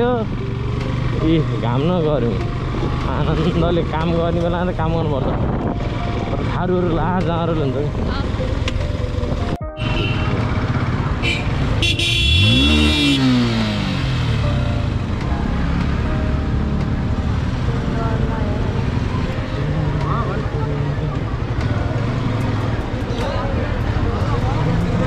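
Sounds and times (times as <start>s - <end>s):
motorcycle engine revving: 0.0s - 25.0s
vehicle horn: 9.6s - 13.6s
people's voices: 17.7s - 25.0s.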